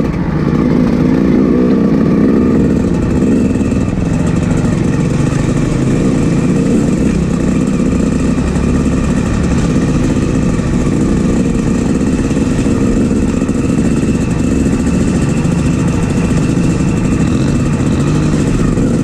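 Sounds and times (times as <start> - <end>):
dirt bike engine running: 0.0 - 19.0.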